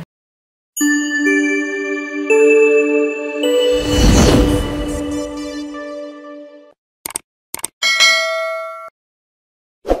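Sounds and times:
bell ding chime: 0.8 - 4.7, 7.8 - 8.9.

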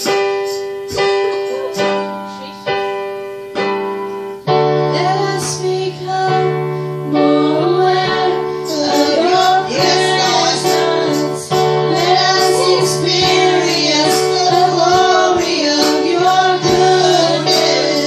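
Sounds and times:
electric keyboard chords: 0.0 - 18.0
women singing together: 4.9 - 18.0.

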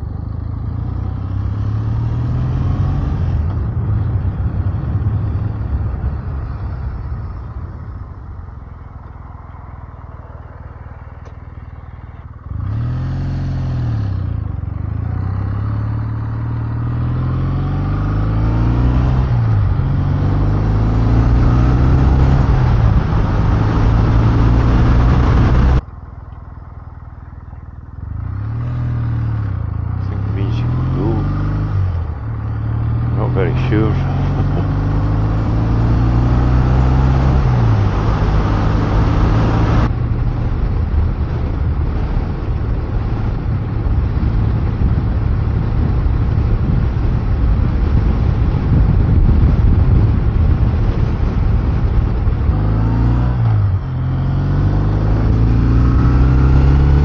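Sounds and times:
motorcycle engine accelerating: 0.0 - 57.0
wind rush: 17.0 - 25.8, 33.7 - 57.0.

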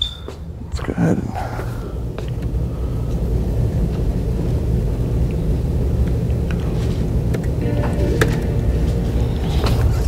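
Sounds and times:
steady low rumble: 0.5 - 10.0.

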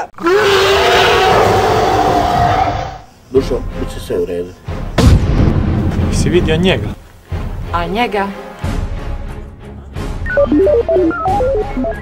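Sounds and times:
loud explosion boom: 5.0 - 6.2.

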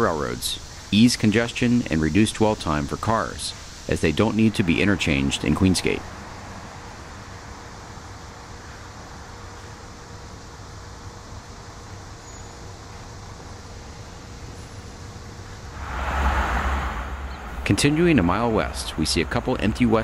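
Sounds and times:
diesel locomotive rumbling: 15.6 - 20.0.

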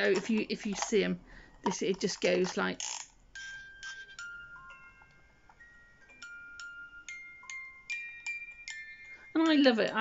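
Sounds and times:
music box tinkling tune: 3.3 - 10.0.

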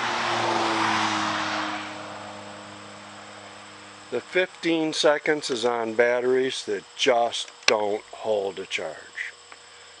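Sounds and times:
vehicle passing by: 0.0 - 4.0
steady low hum: 0.0 - 10.0.

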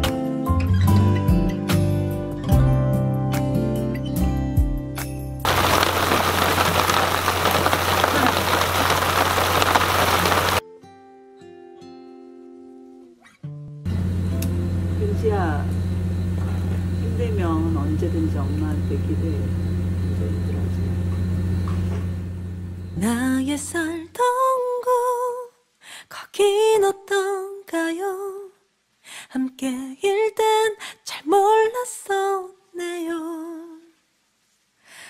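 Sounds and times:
heavy rain: 5.5 - 10.6
low hum: 13.9 - 24.0.

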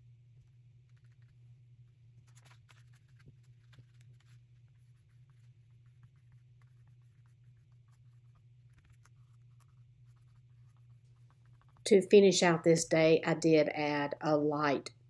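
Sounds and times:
faint low room hum: 0.0 - 15.0
woman's voice: 11.9 - 14.9.

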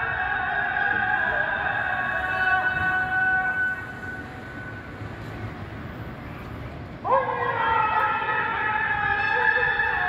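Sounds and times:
call to prayer over loudspeaker: 0.0 - 4.8, 7.0 - 10.0.

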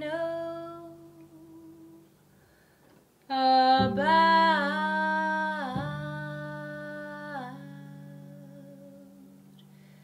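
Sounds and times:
woman singing jazz ballad: 0.0 - 2.2, 3.3 - 9.7.

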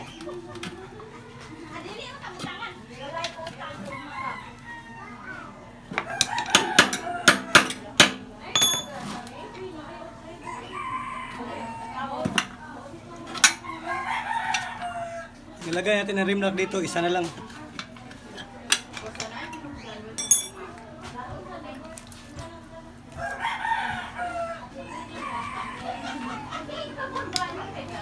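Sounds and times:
rooster crowing: 3.9 - 5.3.

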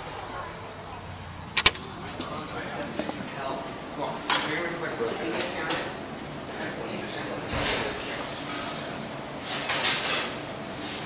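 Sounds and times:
metallic door lock clicks: 1.6 - 1.8.

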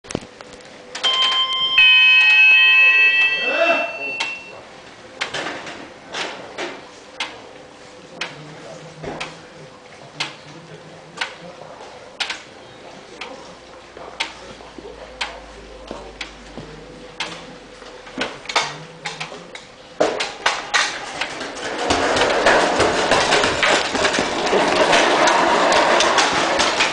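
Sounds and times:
clattering sled runners: 21.1 - 26.9
sled clicking on ice: 21.3 - 26.9
running feet: 21.7 - 26.9.

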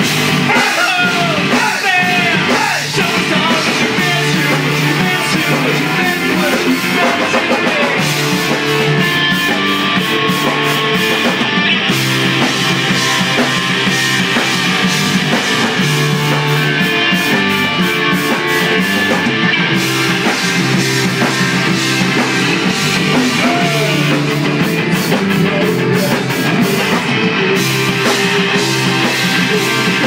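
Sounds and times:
bass guitar: 0.0 - 30.0
drum kit with cymbals: 0.0 - 30.0
electric guitars: 0.0 - 30.0.

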